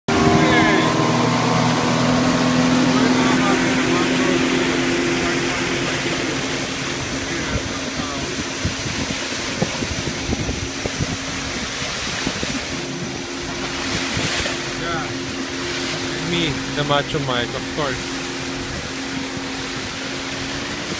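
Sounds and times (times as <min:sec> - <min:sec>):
boat motor running: 0:00.0 - 0:20.9
water rushing: 0:00.0 - 0:20.9
wind buffeting microphone: 0:00.1 - 0:20.9.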